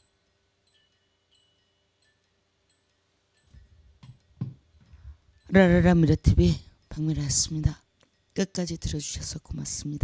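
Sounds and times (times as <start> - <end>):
soft microphone thumps: 3.5 - 5.0.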